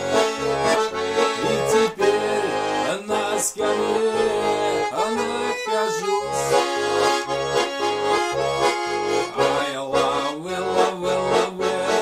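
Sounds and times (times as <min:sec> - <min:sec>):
button accordion playing: 0:00.0 - 0:12.0.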